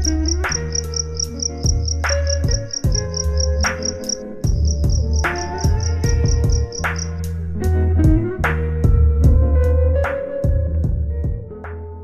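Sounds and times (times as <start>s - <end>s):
high chirping ticks: 0.0s - 7.2s
deep bass notes: 0.0s - 12.0s
hard drum hits: 4.5s - 7.1s.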